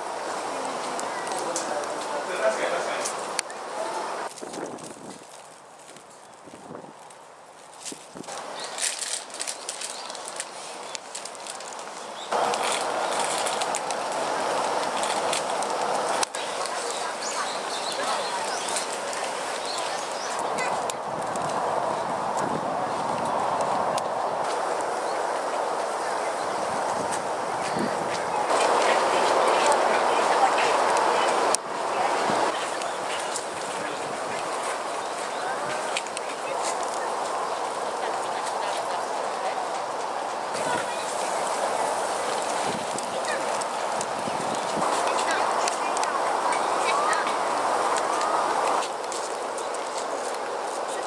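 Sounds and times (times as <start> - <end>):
distant people talking: 0.0 - 4.3, 12.2 - 51.0
steady murmur: 8.2 - 51.0
songbirds chirping: 8.3 - 14.9, 15.5 - 21.0, 23.1 - 48.7.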